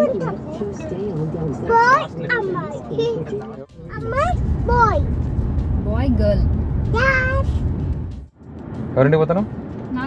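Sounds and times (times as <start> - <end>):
car road noise rumble: 0.0 - 10.0.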